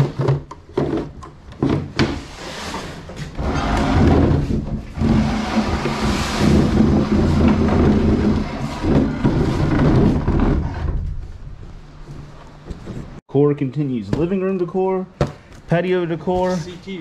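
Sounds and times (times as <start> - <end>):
wooden table rumbling and knocking: 0.0 - 13.2.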